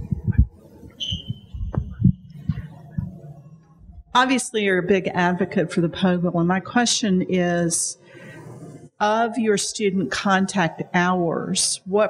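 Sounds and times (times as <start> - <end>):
microphone handling thumps: 0.0 - 4.1.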